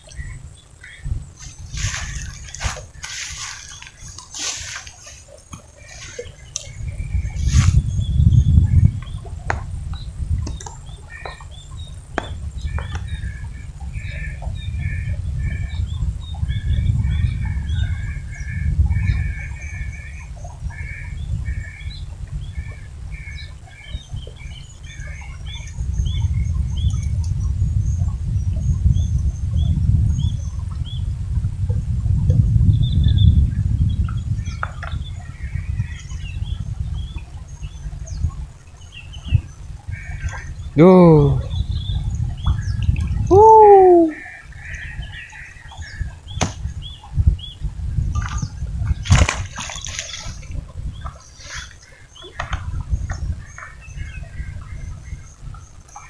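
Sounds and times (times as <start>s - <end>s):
small birds chirping: 0.0s - 31.1s, 32.6s - 56.0s
wind rumbling on microphone: 0.0s - 56.0s.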